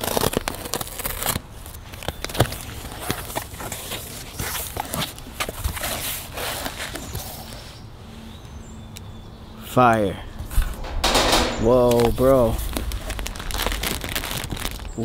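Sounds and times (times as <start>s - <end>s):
knife slitting packing tape: 0.0s - 5.1s.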